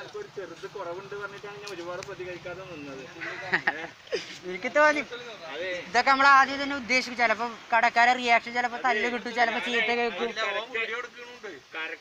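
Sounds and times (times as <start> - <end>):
voices speaking: 0.0 - 12.0.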